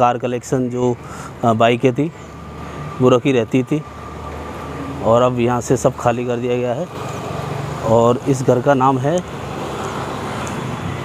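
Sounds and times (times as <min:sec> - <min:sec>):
road traffic hiss: 0:00.0 - 0:11.0.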